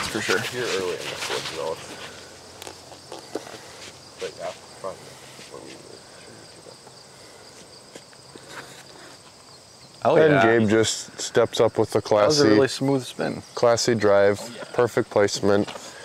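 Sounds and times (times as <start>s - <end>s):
insects chirring: 0.0s - 16.0s.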